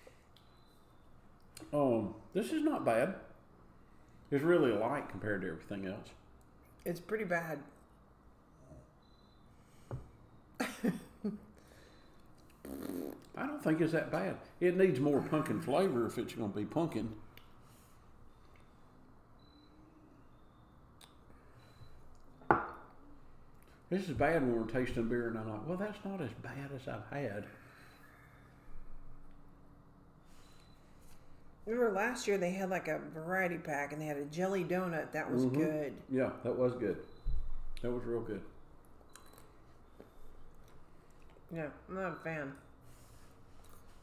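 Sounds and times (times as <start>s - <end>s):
drinking glass set down on table: 22.5s - 22.9s.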